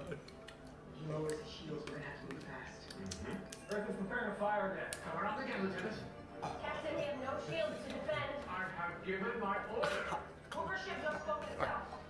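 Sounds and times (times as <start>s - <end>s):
television dialogue: 0.0s - 12.0s
television soundtrack music: 0.0s - 12.0s.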